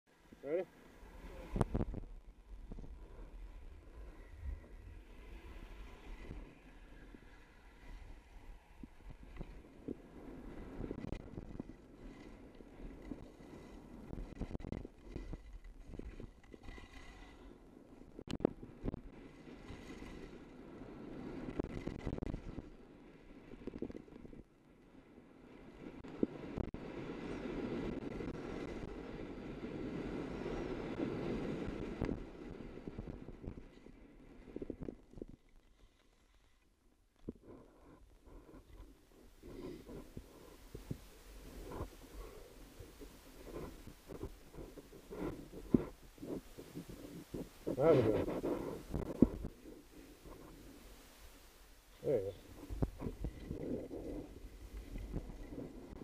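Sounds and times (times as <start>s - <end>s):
wind on microphone: 0.3s - 24.5s, 25.5s - 35.8s, 37.2s - 56.0s
skis carving on snow: 0.4s - 24.4s, 37.4s - 56.0s.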